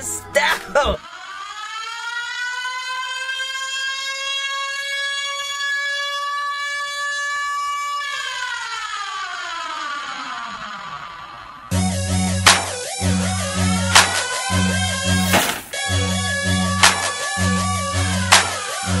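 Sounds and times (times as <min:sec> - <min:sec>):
siren-like wail: 0:01.0 - 0:19.0.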